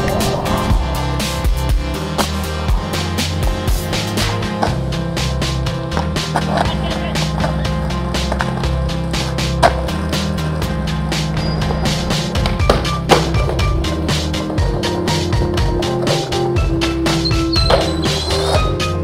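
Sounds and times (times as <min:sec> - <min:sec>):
background music with beat: 0:00.0 - 0:19.0
skateboard impacts: 0:02.0 - 0:03.1, 0:04.1 - 0:18.8
skateboard wheels rolling on stone: 0:02.0 - 0:19.0.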